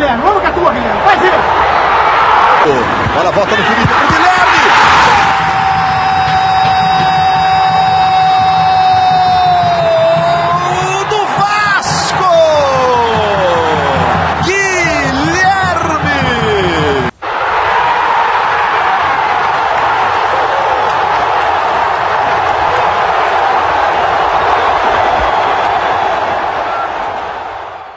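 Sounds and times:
stadium crowd noise: 0.0s - 27.9s
man shouting goal: 3.7s - 17.1s.

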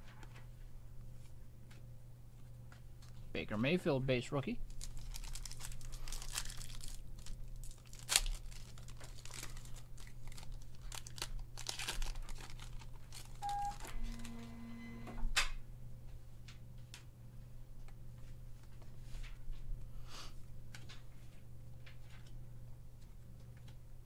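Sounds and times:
sharp wrapper sounds: 4.6s - 13.5s
foil wrapper crinkling and tearing: 4.6s - 13.8s.

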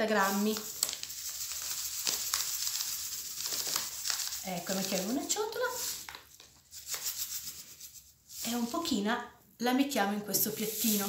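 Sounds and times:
plastic bag crinkling: 0.0s - 7.8s
coconut flakes pouring into bowl: 0.0s - 8.9s.

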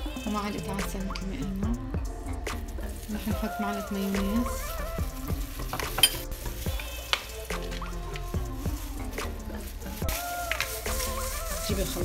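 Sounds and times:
metal spoon scraping glass bowl: 5.8s - 6.3s.

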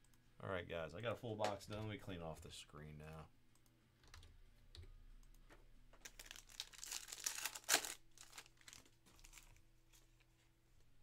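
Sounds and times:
foil wrapper crinkling: 6.0s - 9.6s
wrapper ripping: 6.0s - 9.6s.

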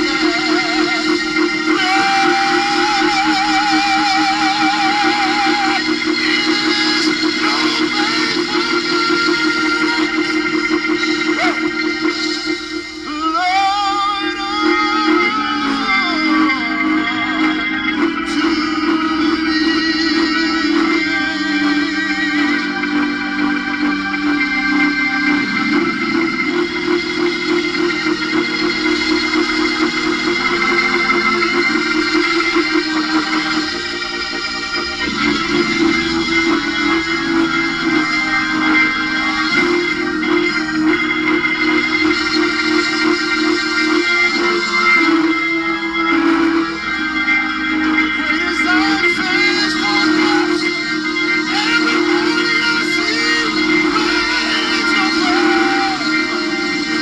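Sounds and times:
man singing gospel: 0.0s - 12.4s, 13.0s - 23.3s, 48.2s - 50.8s, 51.4s - 56.5s
church organ chords: 0.0s - 57.0s
instrumental backing: 0.0s - 57.0s
quick steady rhythmic beat: 0.0s - 57.0s.

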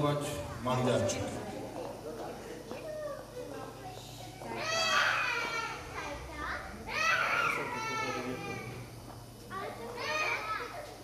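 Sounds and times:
young children talking and calling: 0.1s - 11.0s.

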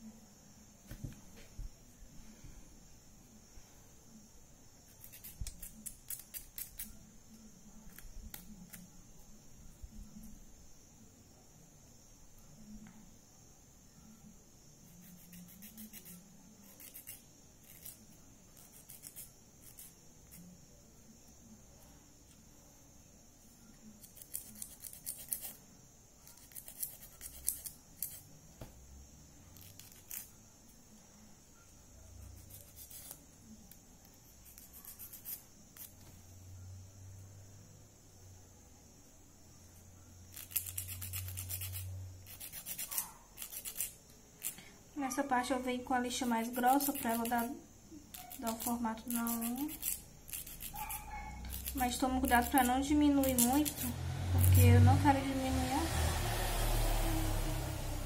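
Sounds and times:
nail file scraping fingernails: 4.9s - 6.9s, 14.9s - 20.5s, 24.0s - 25.6s, 26.2s - 28.2s, 29.6s - 30.3s, 32.3s - 33.2s, 34.4s - 36.0s, 40.3s - 44.6s, 46.2s - 47.5s, 48.1s - 54.7s.

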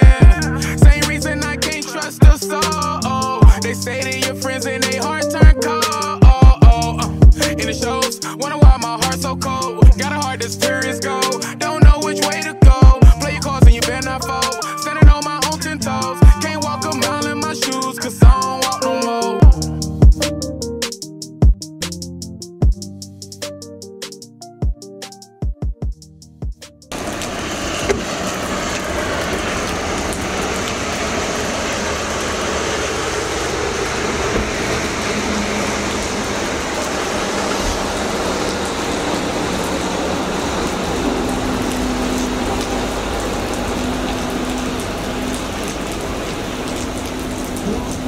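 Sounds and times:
song beat: 0.0s - 26.9s
rain falling on pavement: 26.9s - 48.0s.

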